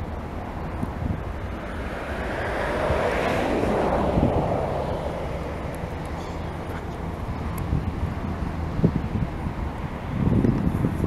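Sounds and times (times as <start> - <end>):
jet engines at takeoff: 0.0 - 11.0
wind buffeting microphone: 0.0 - 11.0.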